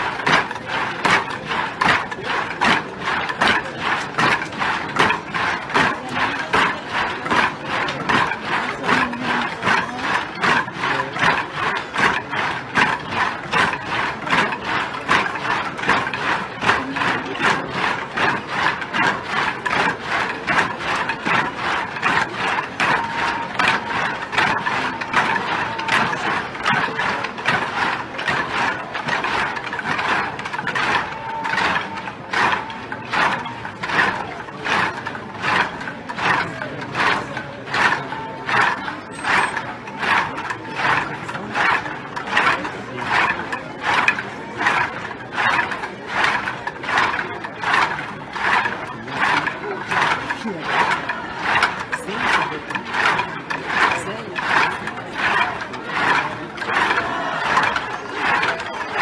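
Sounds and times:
wooden sticks clacking in rhythm: 0.0s - 59.0s.

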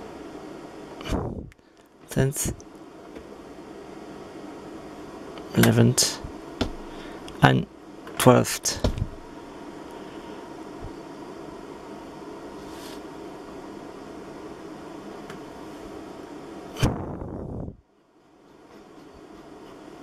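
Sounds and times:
electronics hum: 0.0s - 20.0s.

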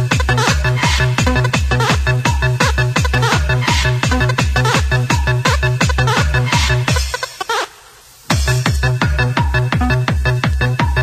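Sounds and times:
electronic dance music: 0.0s - 11.0s.

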